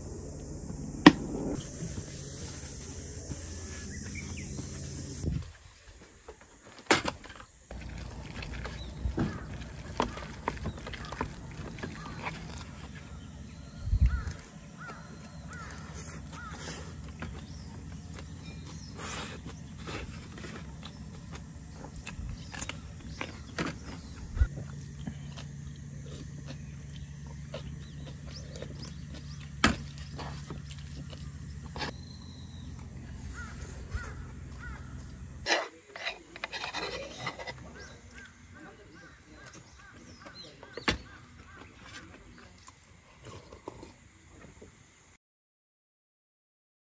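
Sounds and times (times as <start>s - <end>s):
steady low rumble: 0.0s - 5.6s
bird calling: 0.0s - 5.8s, 7.7s - 42.5s
dull thump: 0.7s - 1.6s
metal spoon scraping wooden bowl: 35.4s - 38.0s.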